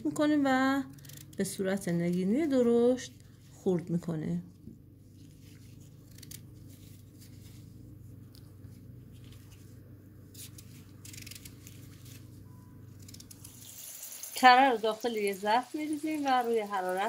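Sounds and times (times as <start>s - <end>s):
steady low hum: 0.0s - 13.8s.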